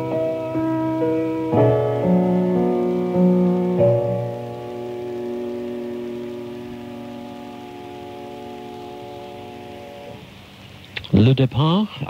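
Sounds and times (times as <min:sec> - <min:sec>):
sustained keyboard chord: 0:00.0 - 0:10.3.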